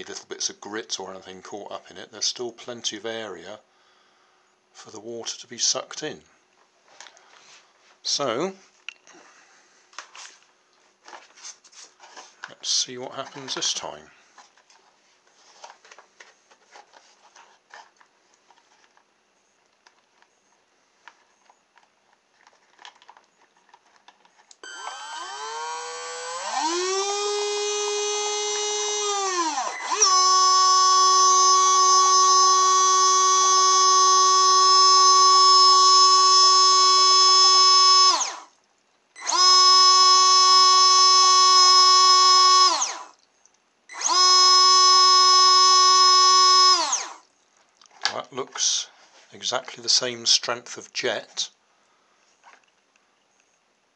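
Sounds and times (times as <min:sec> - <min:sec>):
water pump motor whining: 0:24.6 - 0:38.6, 0:39.2 - 0:43.2, 0:43.9 - 0:47.3.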